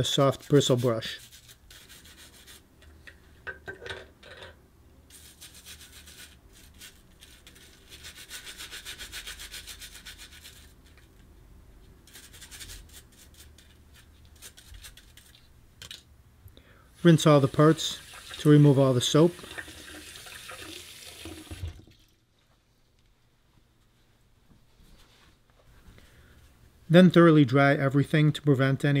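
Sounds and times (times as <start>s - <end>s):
brush scrubbing metal in water: 0.0s - 2.7s, 5.1s - 11.0s, 12.0s - 15.3s.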